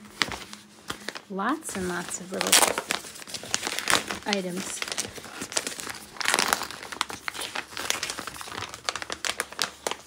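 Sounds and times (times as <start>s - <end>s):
wrapping paper crumpling: 0.0s - 10.0s.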